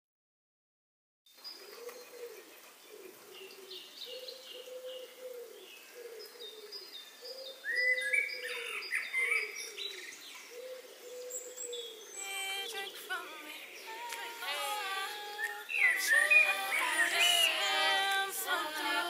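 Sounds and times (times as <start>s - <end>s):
low hooting bird calls: 1.6s - 13.9s
high bird chirps: 15.0s - 18.0s.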